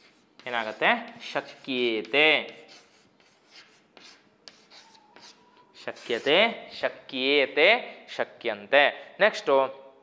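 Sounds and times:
chalk scratching on chalkboard: 0:00.0 - 0:07.1.

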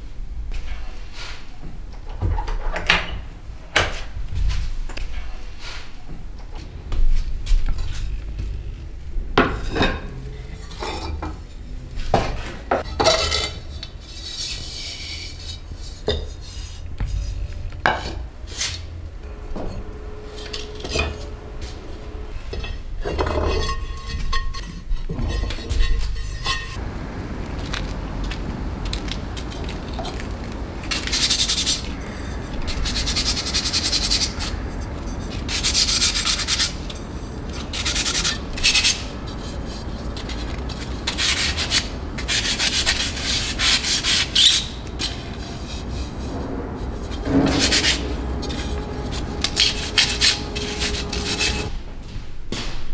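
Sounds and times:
sanding clay dish by hand: 0:31.0 - 0:51.7.

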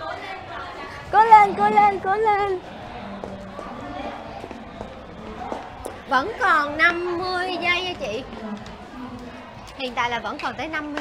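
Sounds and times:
murmur of voices: 0:00.0 - 0:11.0
footsteps: 0:00.7 - 0:11.0.

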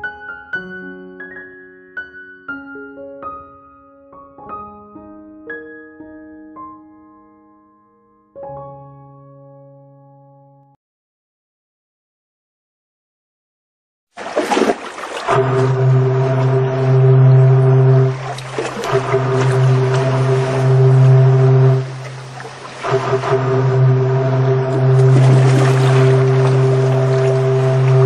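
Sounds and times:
ship's deep horn blasts: 0:15.1 - 0:28.0.

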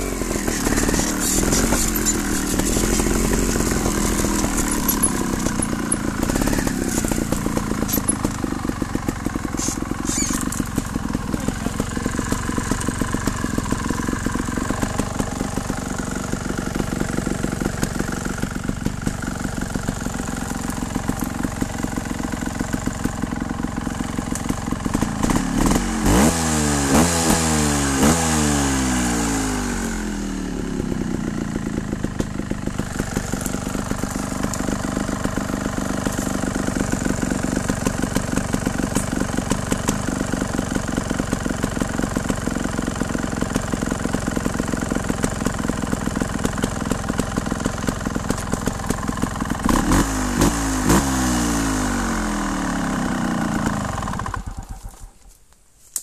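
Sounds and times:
motorcycle engine revving: 0:00.0 - 0:55.1.

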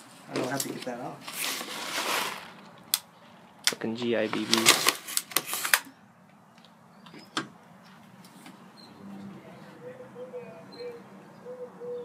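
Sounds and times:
plastic bag crinkling: 0:00.2 - 0:02.9, 0:04.0 - 0:05.9.

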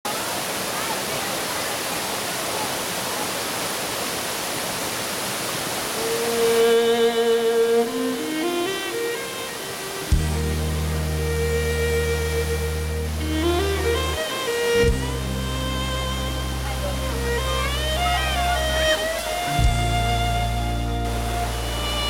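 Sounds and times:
waterfall rushing: 0:00.0 - 0:22.0
background music melody: 0:06.2 - 0:22.0
deep sustained bass note: 0:10.1 - 0:14.2, 0:14.8 - 0:22.0.

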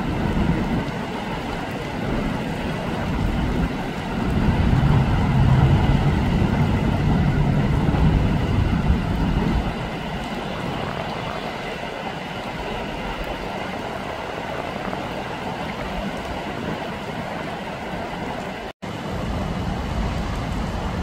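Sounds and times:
road traffic: 0:00.0 - 0:12.8, 0:16.0 - 0:21.0
floodwater: 0:00.0 - 0:21.0
low rumble: 0:02.9 - 0:11.4, 0:18.9 - 0:21.0.

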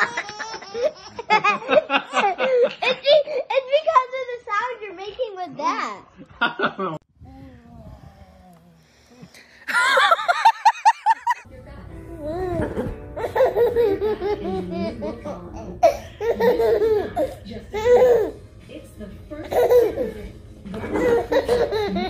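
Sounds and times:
toddler laughing: 0:00.0 - 0:03.5, 0:12.4 - 0:18.4, 0:19.5 - 0:20.2, 0:20.9 - 0:22.0.

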